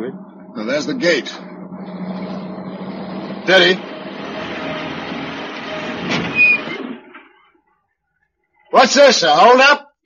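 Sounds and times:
truck engine running: 0:00.0 - 0:07.2.

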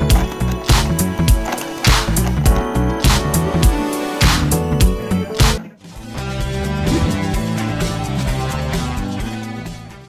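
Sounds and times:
bass line: 0:02.1 - 0:09.8.

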